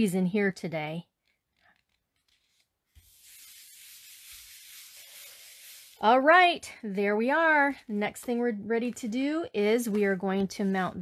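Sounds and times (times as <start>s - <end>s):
hands rubbing paper: 1.8s - 6.1s.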